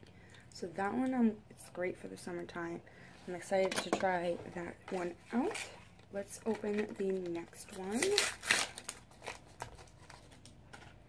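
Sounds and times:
plastic packaging crinkling: 0:05.4 - 0:10.7.

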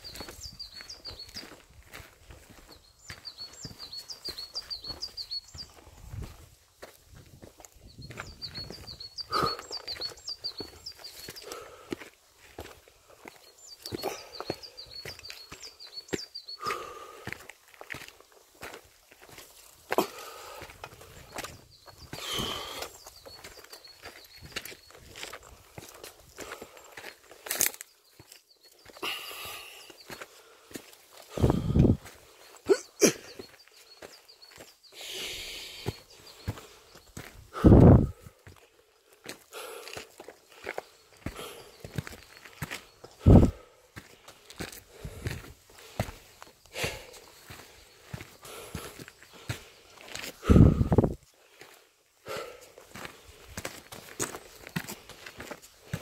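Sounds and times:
footsteps crunching on gritty trail: 0:00.0 - 0:56.0.

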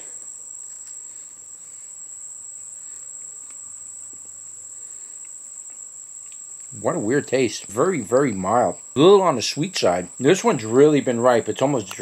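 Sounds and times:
high-pitched insect-like whine: 0:00.0 - 0:12.0.

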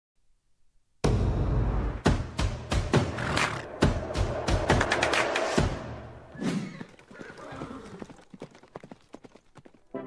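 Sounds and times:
galloping horse hoofbeats: 0:06.4 - 0:10.0.

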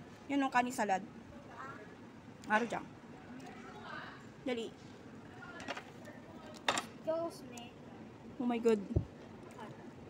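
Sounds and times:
restaurant chatter: 0:00.0 - 0:10.0.

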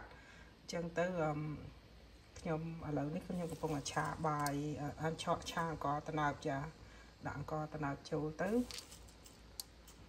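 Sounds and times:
woman talking: 0:00.7 - 0:01.8, 0:02.4 - 0:08.8.

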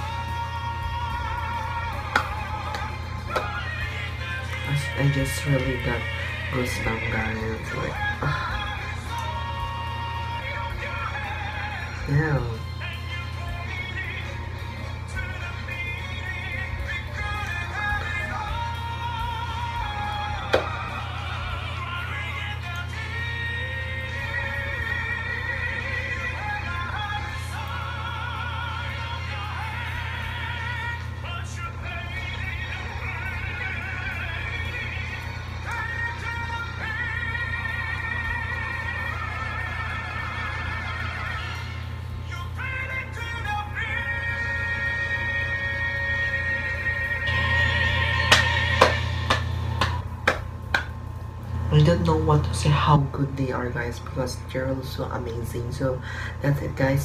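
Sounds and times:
male vocal quartet singing: 0:00.0 - 0:50.9
hand claps: 0:02.0 - 0:03.6, 0:20.4 - 0:20.8, 0:48.2 - 0:51.0.

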